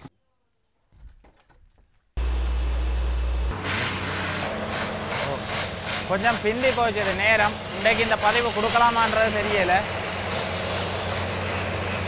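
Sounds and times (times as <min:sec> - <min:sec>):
drilling rig machine rumble: 0:02.2 - 0:12.0.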